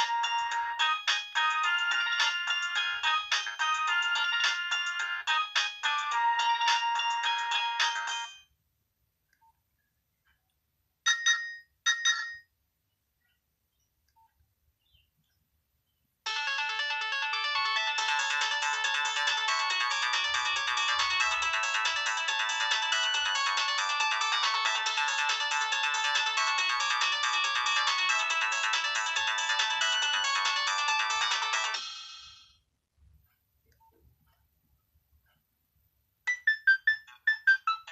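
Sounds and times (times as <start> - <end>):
polyphonic phone ringtone melody: 0.0 - 8.5, 11.1 - 12.4, 16.3 - 32.5, 36.3 - 37.9.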